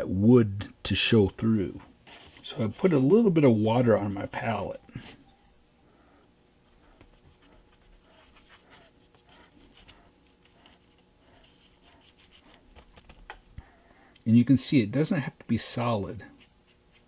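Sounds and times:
paintbrush scratching on surface: 0:07.2 - 0:12.7, 0:16.3 - 0:17.0.

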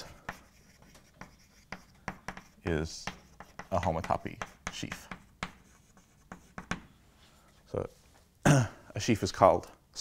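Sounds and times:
chalk scratching on blackboard: 0:00.0 - 0:06.9
chalk tapping on blackboard: 0:00.0 - 0:07.0.

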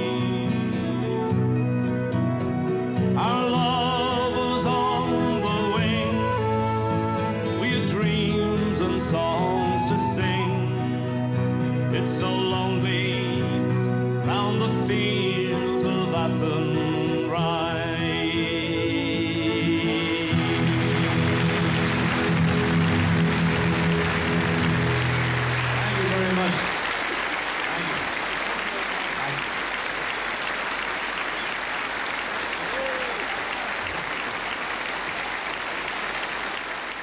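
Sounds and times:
audience applause: 0:19.9 - 0:37.0.

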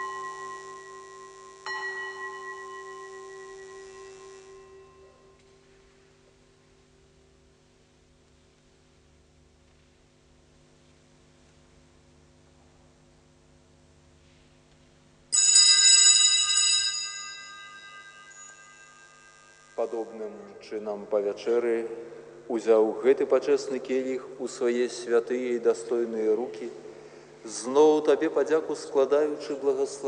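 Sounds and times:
bell ringing: 0:00.0 - 0:05.6, 0:15.4 - 0:20.2.

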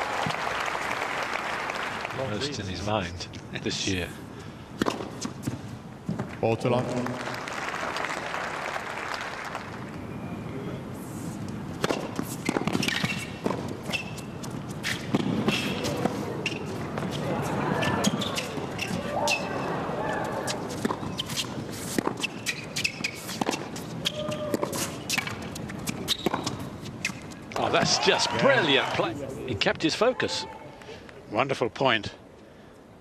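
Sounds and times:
tennis ball bouncing: 0:04.8 - 0:06.3, 0:11.7 - 0:17.2, 0:20.6 - 0:28.0
racket hitting tennis ball: 0:11.8 - 0:17.2, 0:20.5 - 0:28.0
sneakers squeaking: 0:11.8 - 0:28.7.

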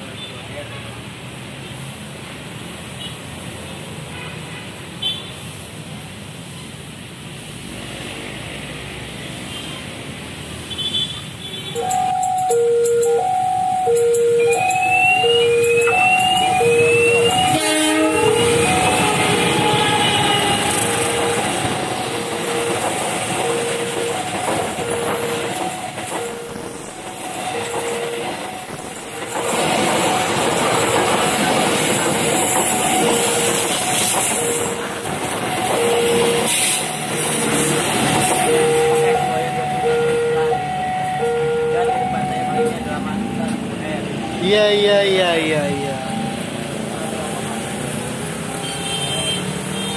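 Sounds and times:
level crossing alarm: 0:11.7 - 0:49.0
train wheels clattering over rails: 0:15.6 - 0:39.2.

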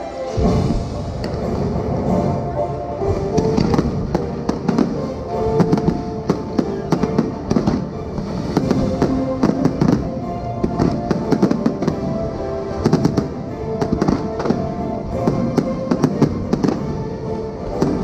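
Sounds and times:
music playing: 0:00.0 - 0:18.0
fireworks bangs and crackles: 0:00.4 - 0:18.0.

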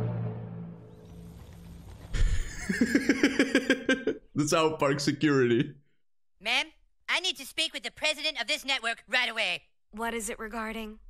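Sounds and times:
man laughing hard: 0:02.2 - 0:04.3.

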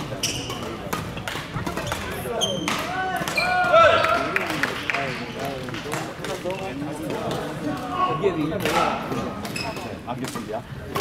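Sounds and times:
shoes squeaking on wooden court: 0:00.0 - 0:03.6, 0:09.4 - 0:10.0.

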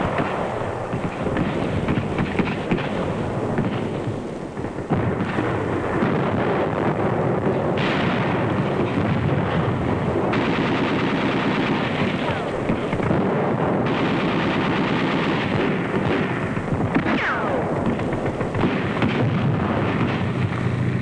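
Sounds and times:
gunshots: 0:00.0 - 0:21.0
rapid machine-gun fire: 0:00.0 - 0:21.0.

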